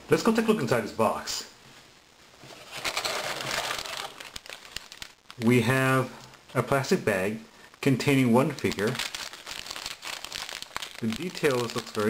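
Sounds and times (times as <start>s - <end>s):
plastic bag crinkling: 2.5s - 6.6s, 7.7s - 12.0s
small parts clicking inside bag: 2.8s - 5.5s, 8.4s - 12.0s.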